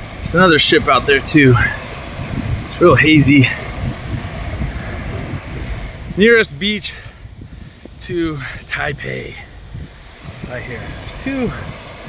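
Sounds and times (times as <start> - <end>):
small waves washing onto beach: 0.0 - 12.0
wind buffeting microphone: 0.0 - 12.0.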